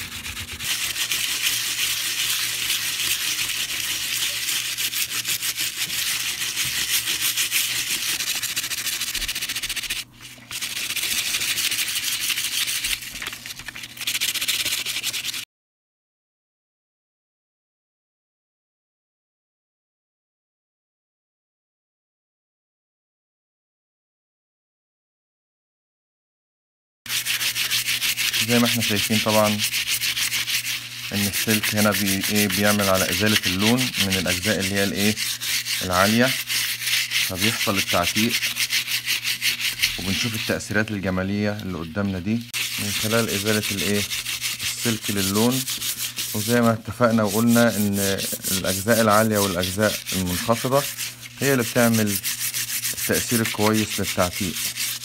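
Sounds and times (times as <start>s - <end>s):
wire scourer scrubbing metal: 0.0s - 10.0s, 27.1s - 40.7s, 42.6s - 55.0s.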